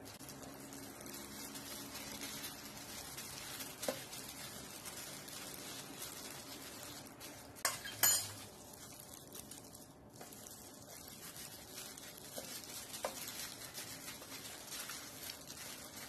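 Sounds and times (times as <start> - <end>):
gloved hands pressing rice: 0.2 - 16.0.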